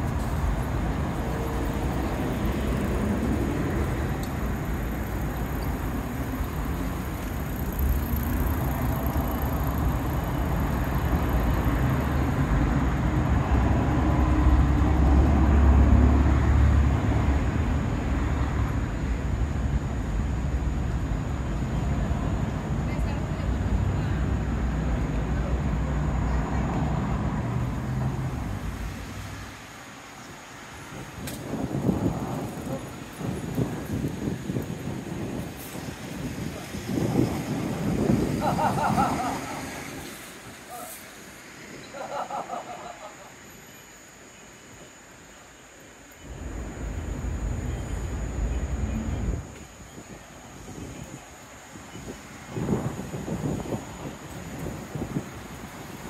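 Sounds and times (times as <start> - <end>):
cars passing: 0.0 - 44.3, 46.2 - 56.0
heavy vehicle engine rumbling: 46.2 - 49.5.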